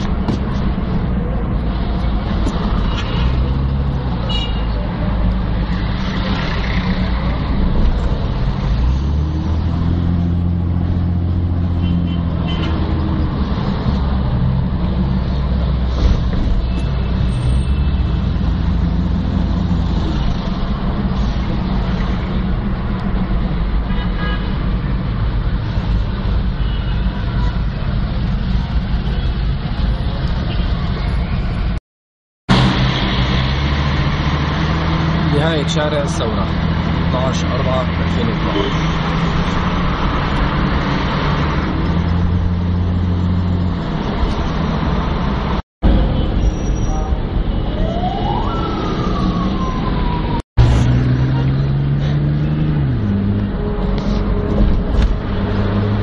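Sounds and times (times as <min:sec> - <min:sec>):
car engine and road noise: 0:00.0 - 0:31.8, 0:32.5 - 0:56.0.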